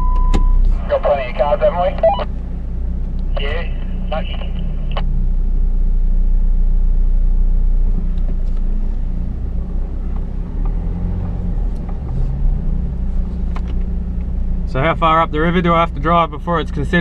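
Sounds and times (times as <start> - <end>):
engine droning at low revs: 0.0 - 17.0.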